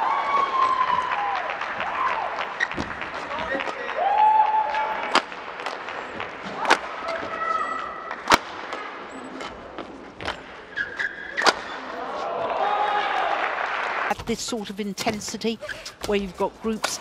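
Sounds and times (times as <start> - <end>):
court shoes squeaking: 0.0 - 3.9, 4.6 - 12.4, 14.1 - 17.0
crowd hum: 0.0 - 14.8
rackets hitting shuttlecock: 5.0 - 9.6, 10.2 - 11.8.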